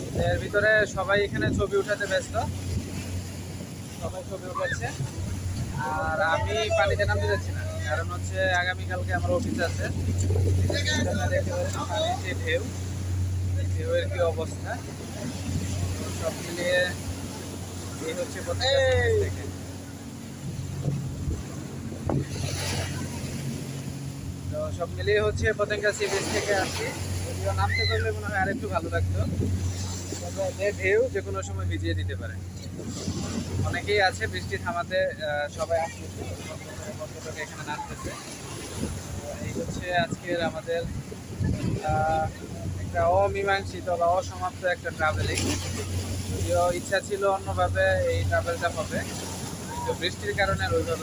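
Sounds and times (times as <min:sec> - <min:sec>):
man talking: 0:00.0 - 0:02.6, 0:03.9 - 0:05.1, 0:05.7 - 0:12.7, 0:13.4 - 0:14.9, 0:17.9 - 0:19.6, 0:24.4 - 0:29.4, 0:30.2 - 0:32.4, 0:33.6 - 0:38.2, 0:39.2 - 0:40.9, 0:41.6 - 0:45.4, 0:46.3 - 0:49.1, 0:49.8 - 0:51.0
wind buffeting microphone: 0:00.0 - 0:25.8, 0:26.5 - 0:51.0
waves washing against shore: 0:00.0 - 0:51.0.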